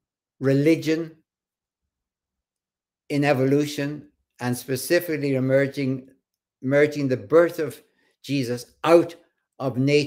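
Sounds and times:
man speaking: 0:00.4 - 0:01.3, 0:03.1 - 0:10.0.

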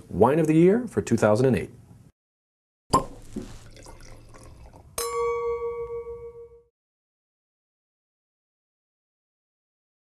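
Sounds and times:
liquid pouring: 0:02.9 - 0:05.0
glass chime ringing: 0:05.0 - 0:06.7.

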